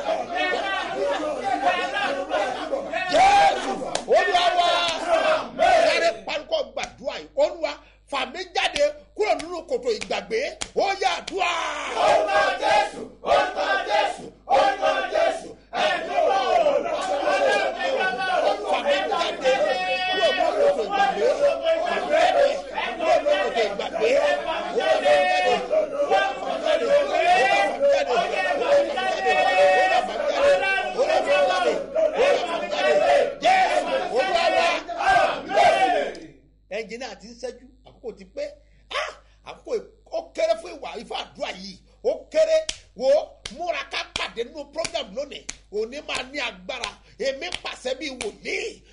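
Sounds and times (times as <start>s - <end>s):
man praying loudly: 0.0s - 48.9s
man calling out loudly: 38.9s - 48.8s.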